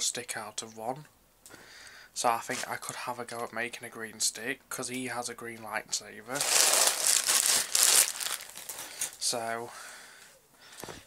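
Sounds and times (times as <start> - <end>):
crinkling handling noise: 6.3 - 9.4.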